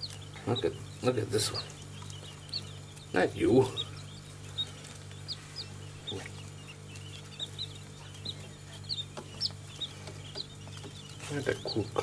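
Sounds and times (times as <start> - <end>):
chicks peeping: 0.0 - 12.0
faint low hum: 0.0 - 12.0.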